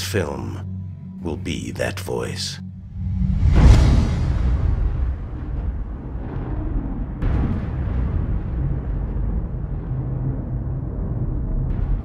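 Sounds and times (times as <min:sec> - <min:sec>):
deep rumbling drone: 0:00.0 - 0:12.0.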